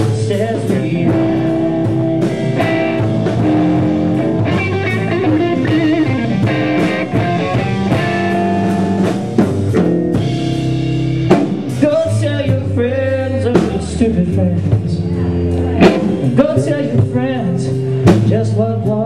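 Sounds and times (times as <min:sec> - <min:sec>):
bass guitar: 0:00.0 - 0:19.0
drums: 0:00.0 - 0:19.0
electric guitar: 0:00.0 - 0:19.0.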